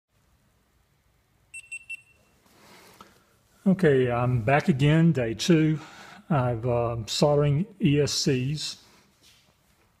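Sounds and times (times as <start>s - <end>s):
high-pitched electronic beeps: 1.6s - 2.3s.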